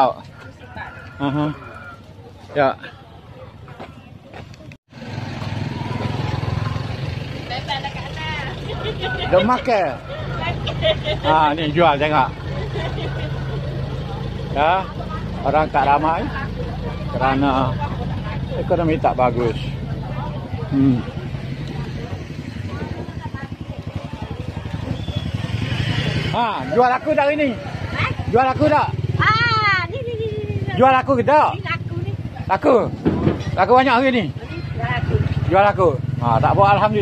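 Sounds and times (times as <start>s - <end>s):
motorcycle engine running: 1.2s - 37.0s
faint voices: 5.7s - 35.5s.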